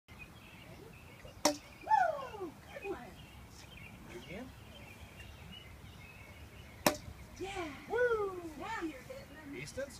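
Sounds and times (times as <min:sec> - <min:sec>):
plastic bat hitting ball: 0:01.4 - 0:01.7, 0:06.8 - 0:07.1.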